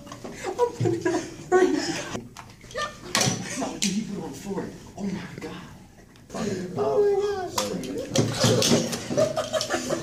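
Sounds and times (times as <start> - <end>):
excited voices reacting: 6.3 - 10.0.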